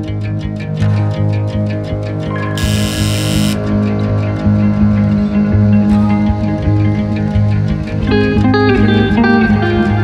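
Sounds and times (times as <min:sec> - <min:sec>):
guitar background music: 0:00.0 - 0:10.0.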